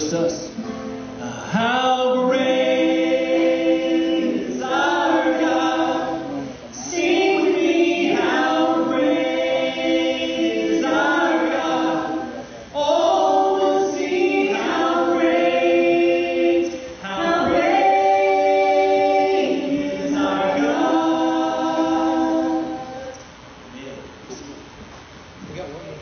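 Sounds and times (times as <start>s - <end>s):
congregation singing a cappella: 0.0s - 23.4s.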